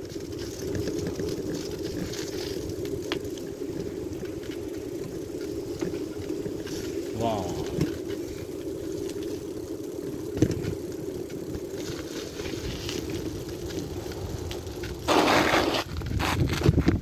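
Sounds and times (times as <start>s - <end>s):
bicycle tyres rolling on concrete: 0.0s - 17.0s.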